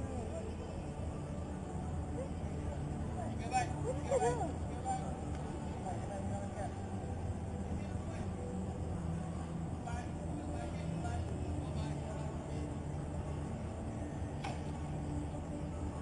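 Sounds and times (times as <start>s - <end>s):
distant indistinct voices: 0.0s - 16.0s
low outdoor rumble: 0.0s - 16.0s.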